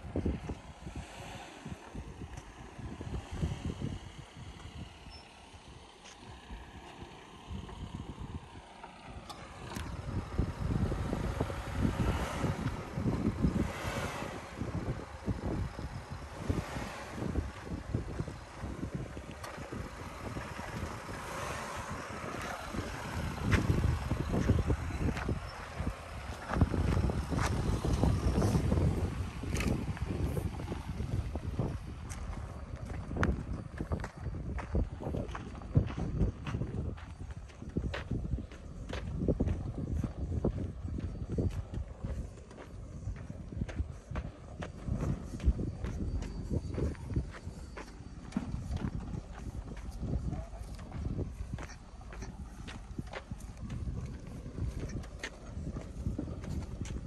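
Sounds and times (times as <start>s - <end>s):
car engine and tyres crawling: 0.0s - 57.0s
footsteps crunching on dirt: 17.3s - 57.0s.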